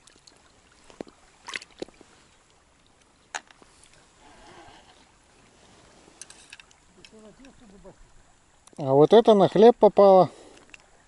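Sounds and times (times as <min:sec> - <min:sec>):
light rustling: 0:00.8 - 0:08.0
quiet murmuring voice: 0:06.9 - 0:08.1.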